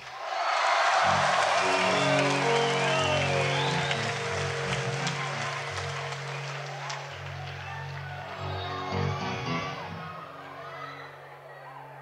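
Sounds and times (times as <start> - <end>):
audience cheering and applauding: 0.0 - 12.0
guitar and bass chord ringing: 1.1 - 11.8.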